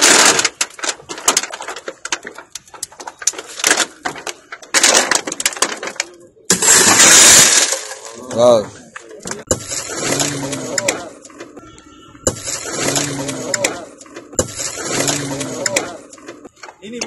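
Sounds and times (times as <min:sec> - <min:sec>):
car window glass breaking: 0:00.0 - 0:11.0.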